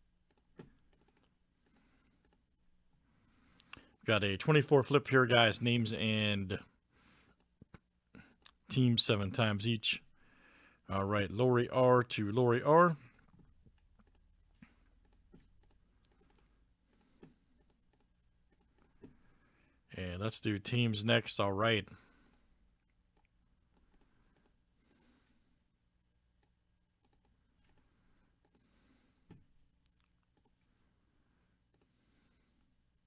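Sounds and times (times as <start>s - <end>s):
computer mouse and keyboard clicks: 0.3s - 2.4s, 13.1s - 14.3s, 14.9s - 19.2s, 23.2s - 25.0s, 26.4s - 28.7s, 29.3s - 30.7s
mouse and keyboard clicks: 0.3s - 2.4s.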